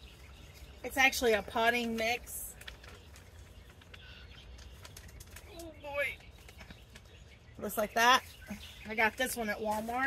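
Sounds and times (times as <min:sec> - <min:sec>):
plastic bag crinkling: 0:00.0 - 0:07.4.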